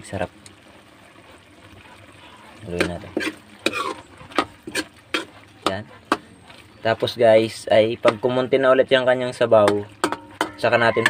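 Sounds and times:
metal ladle scraping a wok: 2.9 - 6.2, 9.8 - 10.7.

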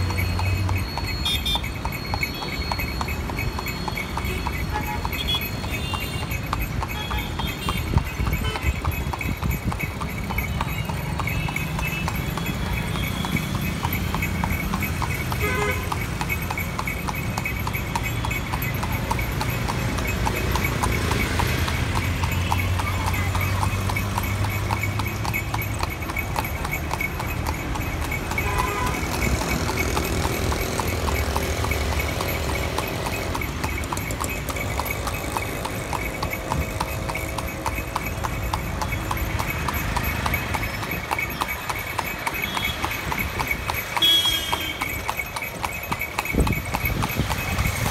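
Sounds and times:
horse hooves clip-clopping on pavement: 0.0 - 47.9.

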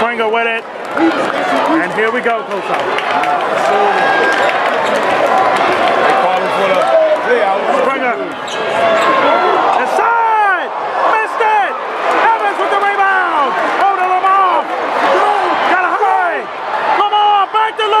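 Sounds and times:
crowd voices: 0.0 - 18.0.

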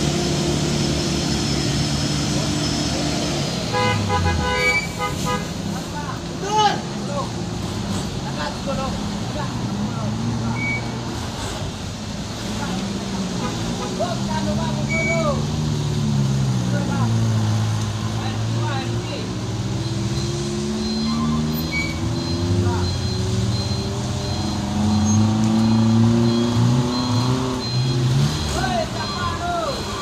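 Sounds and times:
vehicle engines revving: 0.0 - 30.0
reversing alarm beeping: 19.7 - 30.0.

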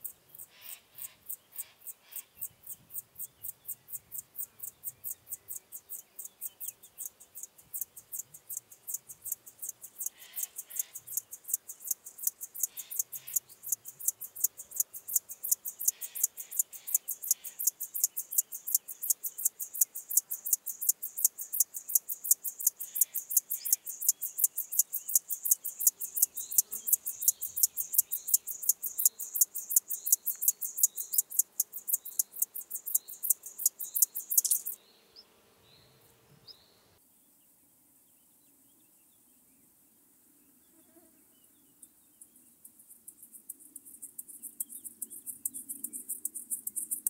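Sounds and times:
grasshopper stridulating: 0.0 - 34.8, 42.2 - 47.0.

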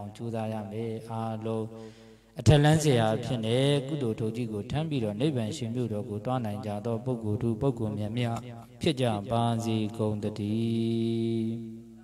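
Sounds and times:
person chanting into microphone: 0.0 - 1.8, 2.4 - 12.0.

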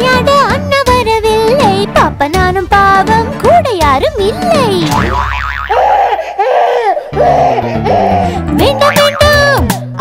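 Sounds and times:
children's background music: 0.0 - 5.4, 8.2 - 10.0
cartoon toddler whining and wailing: 5.7 - 9.5.

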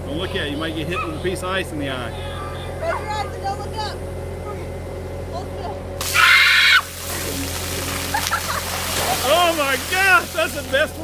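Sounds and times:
diesel engine running: 0.0 - 11.0
girl screaming: 6.0 - 7.0
water pouring and splashing on concrete: 6.0 - 11.0.

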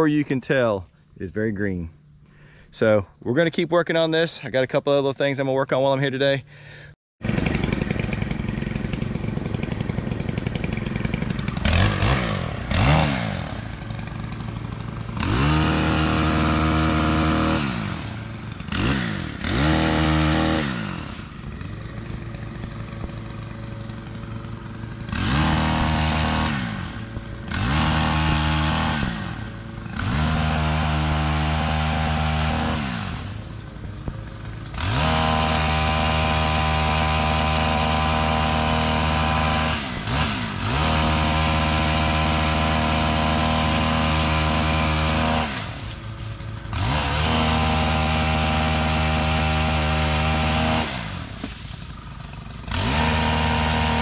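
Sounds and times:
two-stroke engine revving: 6.6 - 54.0.

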